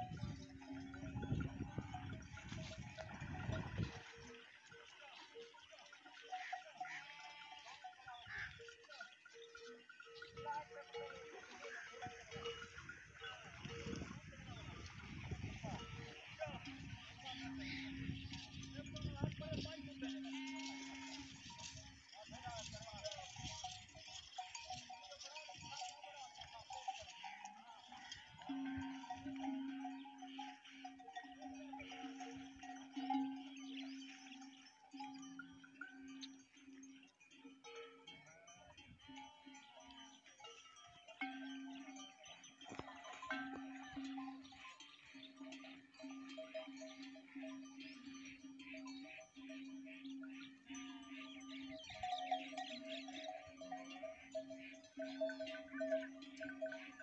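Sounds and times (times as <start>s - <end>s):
animal bells clanking: 0.0s - 57.0s
sheep and goats bleating: 0.0s - 57.0s.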